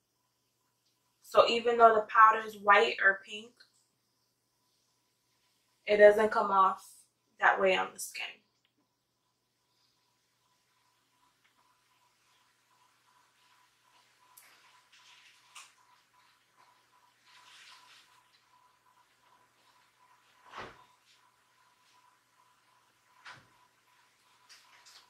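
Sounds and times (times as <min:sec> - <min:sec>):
soft rustles: 0:10.8 - 0:22.2.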